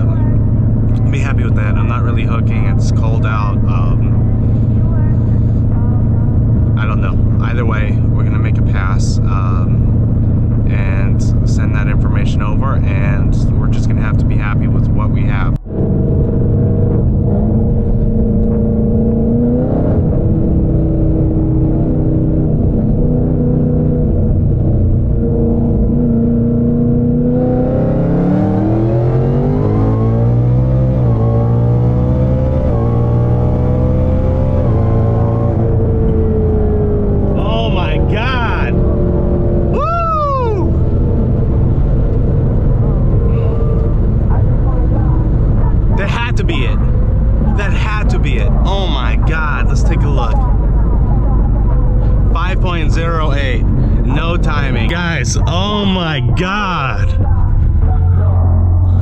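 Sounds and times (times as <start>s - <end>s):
car engine revving through gears: 0.0s - 59.0s.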